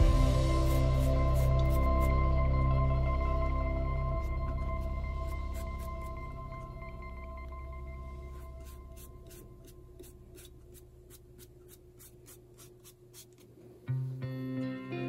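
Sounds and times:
calm music with ringing tones: 0.0s - 10.0s, 13.9s - 15.0s
toothbrush scrubbing mushroom: 0.4s - 2.2s, 4.2s - 6.4s, 8.2s - 13.5s.

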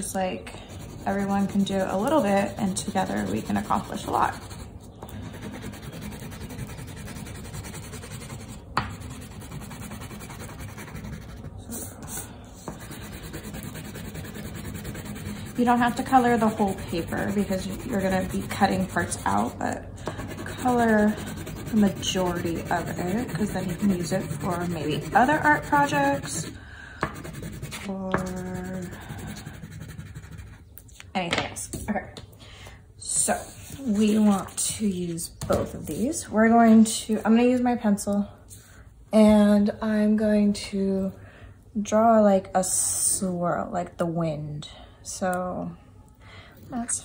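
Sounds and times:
crayon scribbling on paper: 0.7s - 26.6s, 27.2s - 30.7s, 33.4s - 34.7s.

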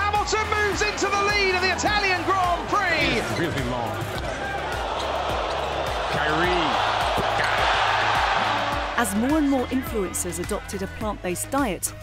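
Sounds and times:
crowd cheering: 0.0s - 10.2s
background music with bass: 0.0s - 12.0s.

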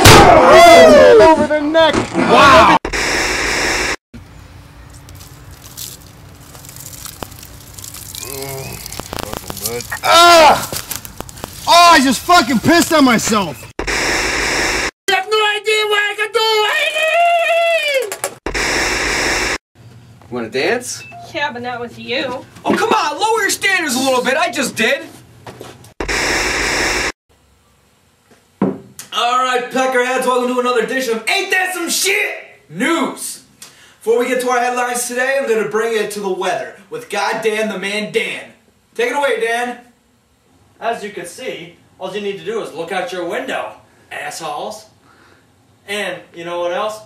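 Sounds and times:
television static hiss: 8.4s - 10.0s, 11.6s - 13.6s.

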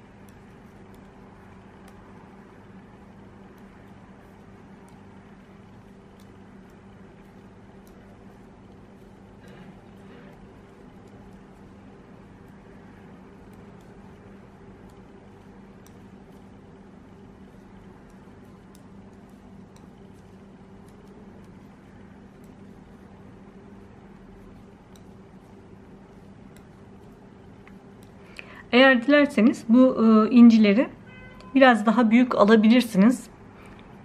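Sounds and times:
knitting needles clicking: 0.0s - 28.5s
low electrical hum: 0.0s - 34.0s.

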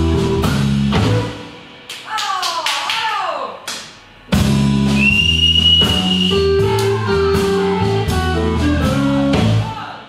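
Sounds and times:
blues band playing live: 0.0s - 1.9s, 4.2s - 9.7s.

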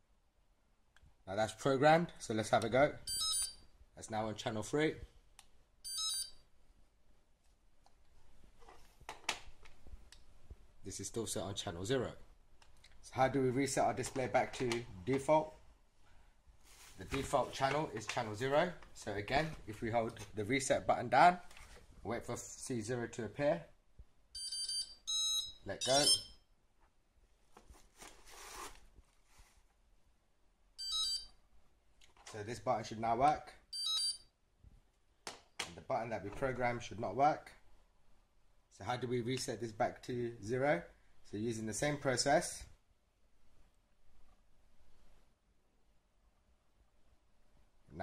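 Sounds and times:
electronic chime high tones: 3.1s - 3.6s, 5.9s - 6.3s, 24.4s - 26.3s.

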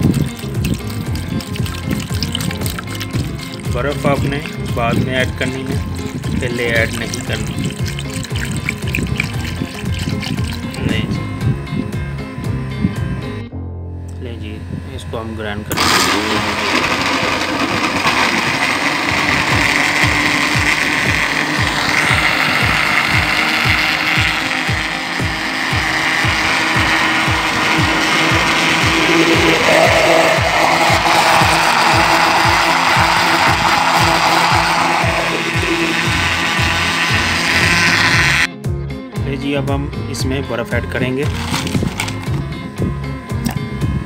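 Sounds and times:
blender running: 0.0s - 13.4s, 14.4s - 38.5s, 41.1s - 44.0s.

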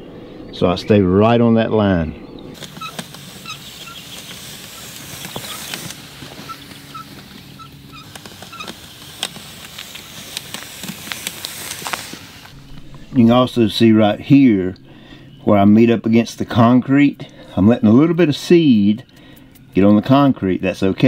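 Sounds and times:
low steady hum: 0.0s - 21.0s
bird calling high notes: 2.0s - 9.0s.

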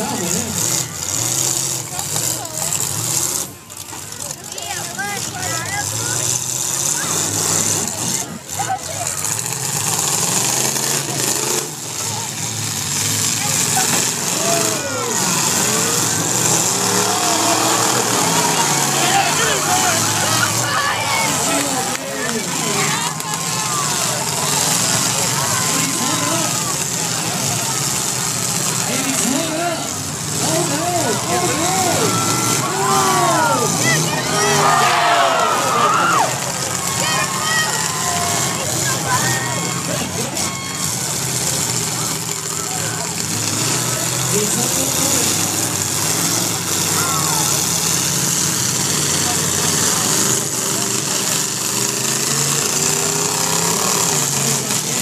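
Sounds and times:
car engines revving: 0.0s - 55.0s
crowd shouting and cheering: 0.0s - 55.0s.

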